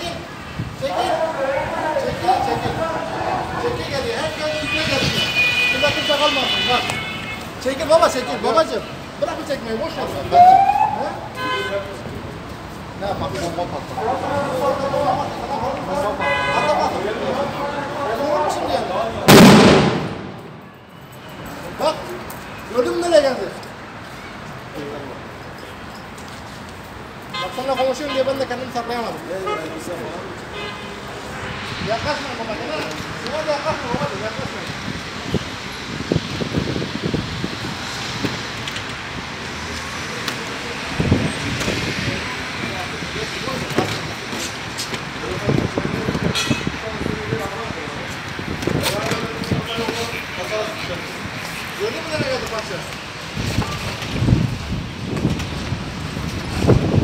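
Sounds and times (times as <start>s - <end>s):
road traffic hiss: 0.0s - 57.0s
loud explosion bang: 19.3s - 20.6s.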